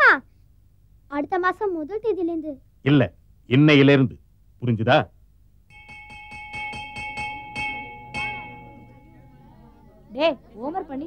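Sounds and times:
hand bell ringing rapidly: 5.7s - 9.5s.

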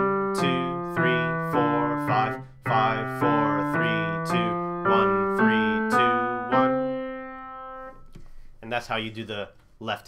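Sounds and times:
piano notes stepping up: 0.0s - 8.2s.

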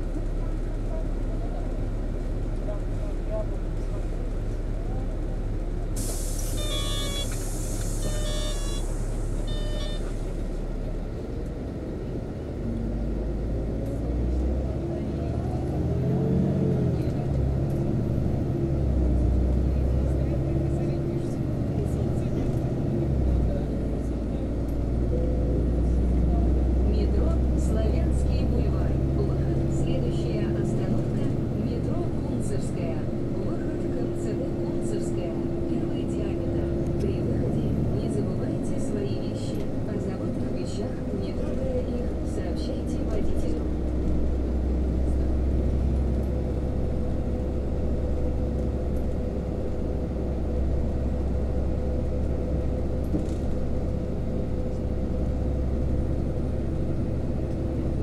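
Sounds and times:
bus engine hum: 0.0s - 58.0s
engine whine: 0.0s - 58.0s
road rumble: 0.0s - 58.0s
short electronic beeps: 6.5s - 7.4s, 8.0s - 10.2s.

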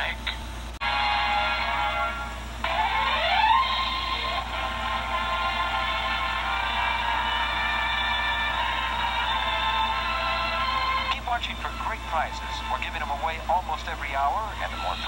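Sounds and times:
theme music through small speaker: 0.0s - 15.0s.

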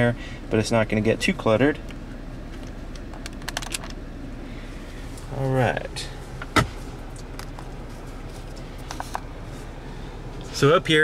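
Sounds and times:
car cabin background noise: 0.0s - 11.0s
armrest lid shutting: 6.4s - 7.6s.

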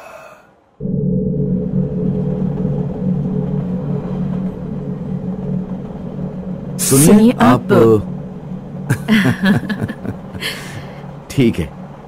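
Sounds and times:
train rumble inside coach: 0.9s - 12.0s.

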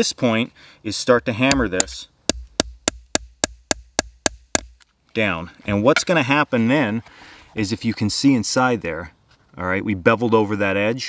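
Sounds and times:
hammer tapping metal setter: 1.5s - 4.7s.

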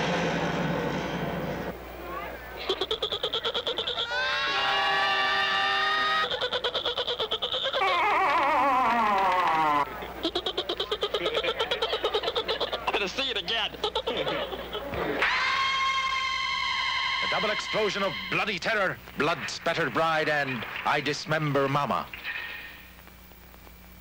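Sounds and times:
choppy cackling laughter: 2.6s - 18.3s
falling wails: 4.0s - 6.4s, 7.8s - 9.9s, 15.0s - 18.3s
rising scream: 4.1s - 6.3s, 15.2s - 18.3s.

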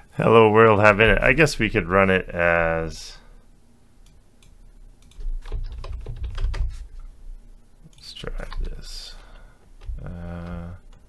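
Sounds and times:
computer keyboard keystrokes: 5.0s - 6.8s.

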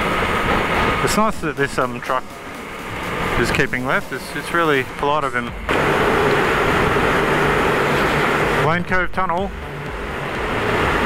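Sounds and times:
motorcycle engine drone: 0.0s - 11.0s
wind and road noise: 0.0s - 11.0s.

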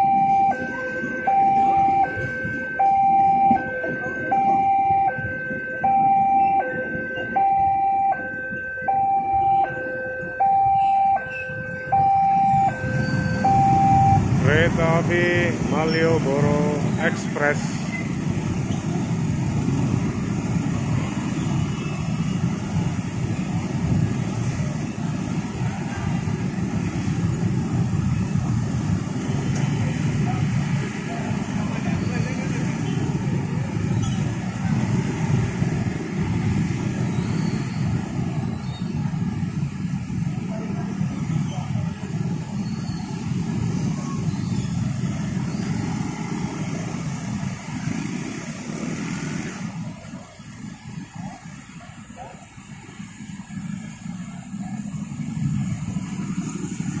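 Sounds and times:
motorcycle and scooter engines: 0.0s - 57.0s.

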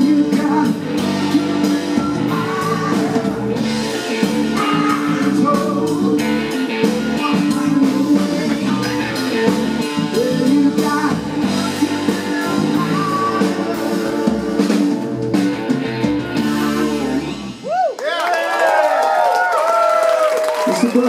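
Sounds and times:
live rock band playing: 0.0s - 17.7s.

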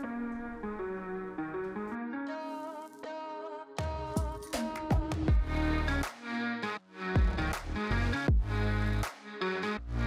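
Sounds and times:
heavy bass and drum beat: 4.2s - 6.1s, 7.2s - 9.1s.

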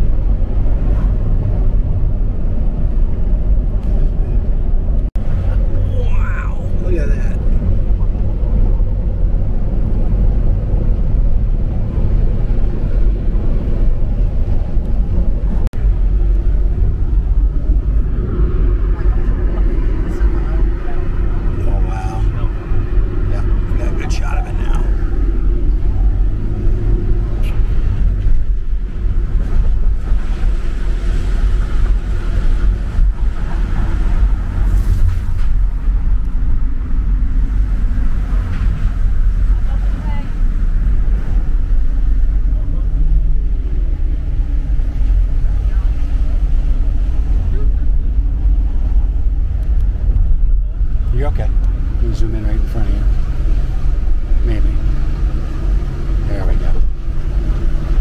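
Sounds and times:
car road noise rumble: 0.0s - 58.0s
wind buffeting microphone: 0.0s - 58.0s.

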